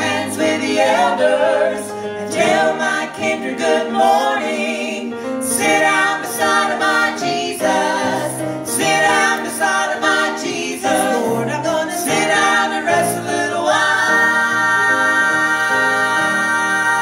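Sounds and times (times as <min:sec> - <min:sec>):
vocal trio singing gospel: 0:00.0 - 0:17.0.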